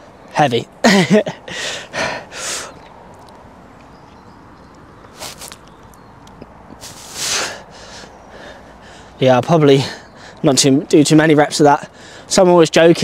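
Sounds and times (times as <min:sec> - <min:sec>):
man breathing hard: 0:01.4 - 0:02.8, 0:06.8 - 0:09.2, 0:09.8 - 0:10.4, 0:11.9 - 0:12.3.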